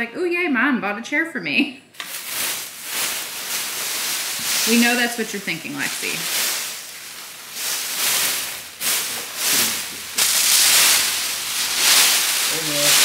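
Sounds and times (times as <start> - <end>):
plastic film crinkling: 2.0 - 13.0.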